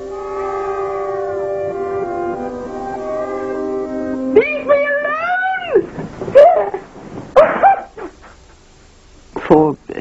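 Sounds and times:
high-pitched wailing cry: 0:00.0 - 0:03.7, 0:04.3 - 0:06.8.

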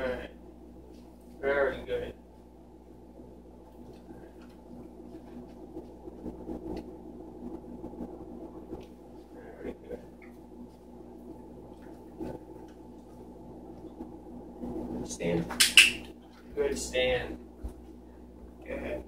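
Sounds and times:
low room hum: 0:00.0 - 0:19.0
soft shuffling: 0:03.6 - 0:06.9, 0:10.0 - 0:14.0.

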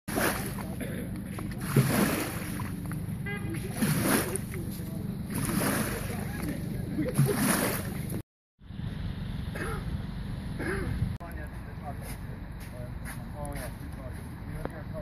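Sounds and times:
small waves washing up slipway: 0:00.1 - 0:03.0, 0:03.6 - 0:04.7, 0:05.3 - 0:08.2
steady low rumble: 0:04.4 - 0:13.0.

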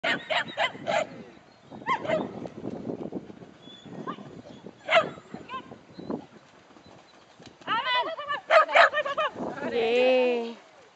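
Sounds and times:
dog barking: 0:00.0 - 0:01.1, 0:01.9 - 0:02.3, 0:04.9 - 0:05.2, 0:08.5 - 0:09.0.

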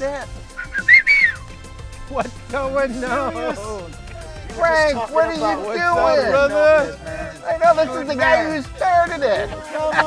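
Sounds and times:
quiet background music: 0:00.0 - 0:10.0
high whistle: 0:00.5 - 0:01.5.

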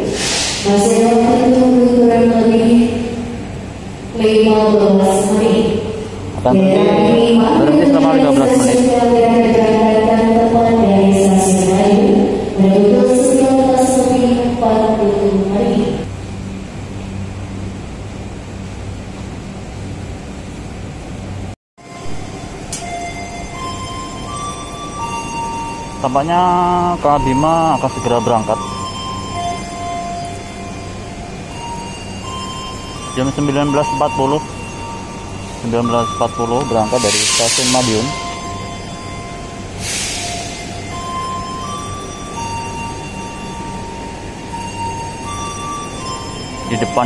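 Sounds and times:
air hiss burst: 0:00.0 - 0:00.7, 0:37.1 - 0:37.8, 0:39.8 - 0:40.8
train hum and rumble: 0:00.0 - 0:47.0
rising held tones: 0:22.0 - 0:47.0.

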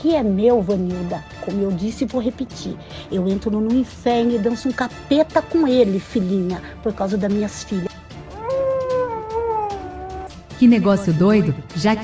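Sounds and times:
long wailing cry: 0:08.3 - 0:10.3.

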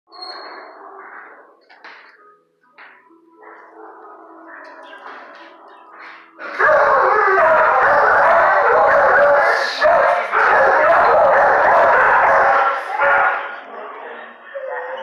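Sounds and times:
dogs barking: 0:00.6 - 0:01.7, 0:03.4 - 0:15.0.

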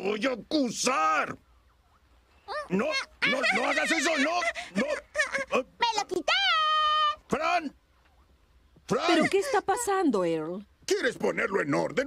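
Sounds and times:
cartoon baby crying: 0:02.5 - 0:05.6.

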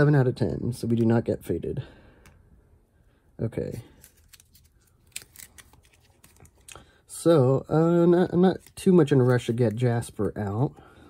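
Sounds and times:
cards clicking and sliding: 0:03.7 - 0:06.9, 0:08.3 - 0:10.4.

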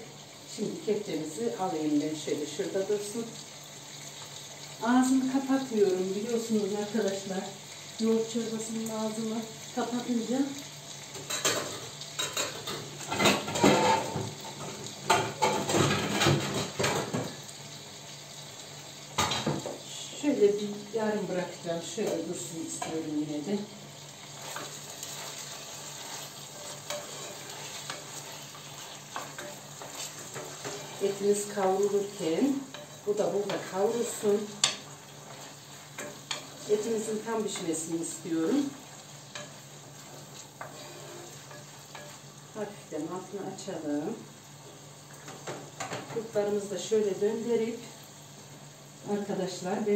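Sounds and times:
meat and onions sizzling: 0:00.0 - 0:49.9
pots and utensils clattering: 0:11.2 - 0:17.4
wooden spoon scraping a pot: 0:13.1 - 0:14.6, 0:24.3 - 0:37.7, 0:39.3 - 0:42.2.

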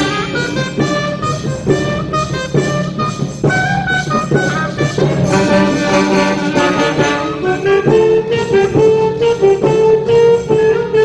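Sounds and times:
concert band playing: 0:00.0 - 0:11.0.

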